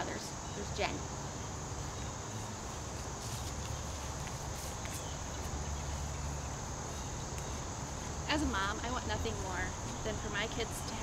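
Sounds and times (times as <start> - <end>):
insects trilling: 0.0 - 11.0
low outdoor rumble: 0.0 - 11.0.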